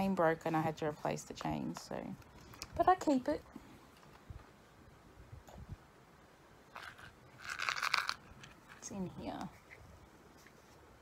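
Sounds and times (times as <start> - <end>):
dense crackling and crunching: 6.7 - 9.0.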